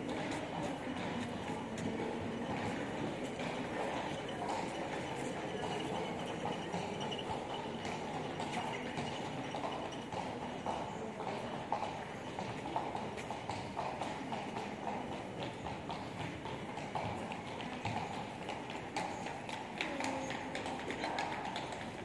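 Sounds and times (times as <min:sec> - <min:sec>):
street noise hum: 0:00.0 - 0:22.0.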